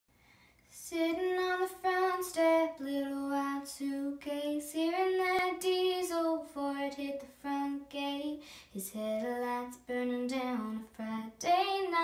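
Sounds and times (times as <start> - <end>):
girl singing a cappella: 0.7 - 12.0.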